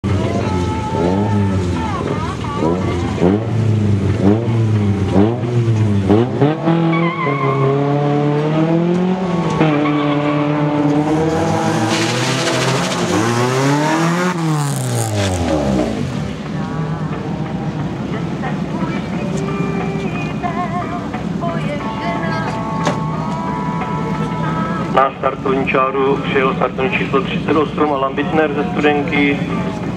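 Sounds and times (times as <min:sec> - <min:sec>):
rally car engine revving: 0:00.0 - 0:29.9.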